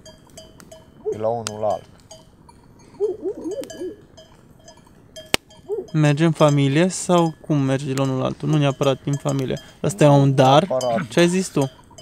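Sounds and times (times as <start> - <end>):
sheep bells ringing: 0.0 - 12.0
short pitched calls: 2.8 - 4.1.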